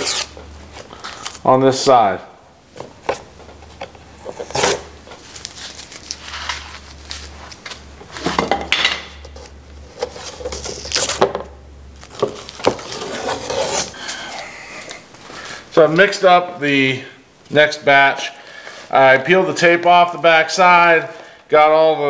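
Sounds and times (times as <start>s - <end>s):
tape ripping and scraping: 0.0s - 1.4s, 4.2s - 8.4s, 9.3s - 11.3s, 12.0s - 15.0s.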